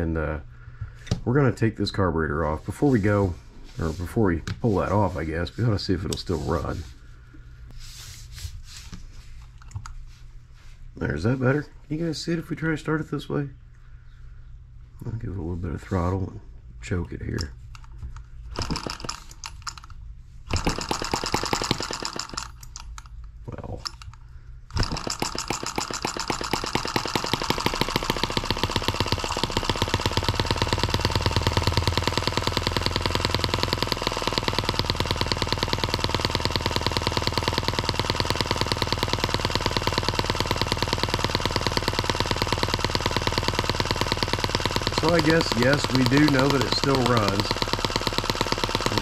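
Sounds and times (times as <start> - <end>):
model engine starting and running: 18.6 - 19.9, 20.5 - 23.0, 24.7 - 49.0.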